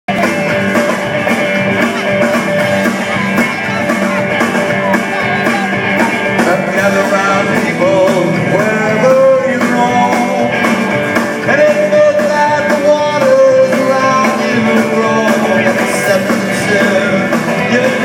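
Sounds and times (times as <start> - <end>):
upright bass: 0.0 - 18.0
steady drum beat: 0.1 - 18.0
twangy electric guitar: 0.1 - 18.0.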